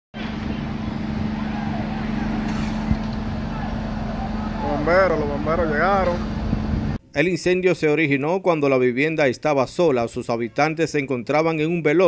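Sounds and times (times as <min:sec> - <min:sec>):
fire truck engine humming: 0:00.1 - 0:07.0
faint voices: 0:00.2 - 0:06.4.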